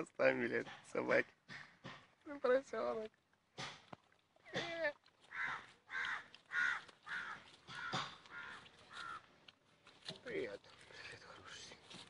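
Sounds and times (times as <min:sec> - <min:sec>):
harsh animal calls: 0:04.5 - 0:09.4.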